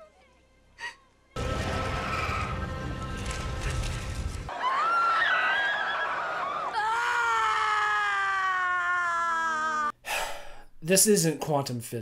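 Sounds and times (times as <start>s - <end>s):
woman screaming: 4.6s - 10.0s.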